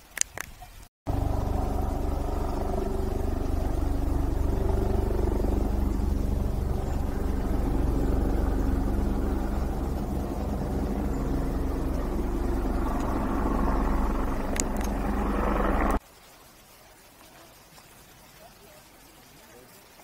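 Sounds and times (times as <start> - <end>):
low rumble with hum: 1.1 - 16.0
sharp clicks: 11.9 - 16.0.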